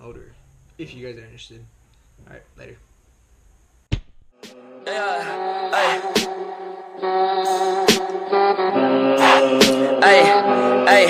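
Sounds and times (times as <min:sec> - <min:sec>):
music with a beat: 0:04.0 - 0:11.0.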